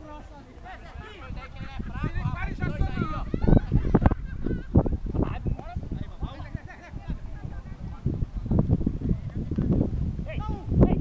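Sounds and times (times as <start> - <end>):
people shouting and calling out: 0.0 - 8.4, 10.2 - 11.0.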